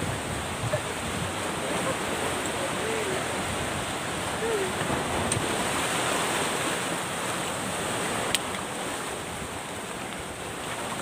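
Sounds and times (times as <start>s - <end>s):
surf on pebbly shore: 0.0s - 11.0s
wind on microphone: 0.0s - 11.0s.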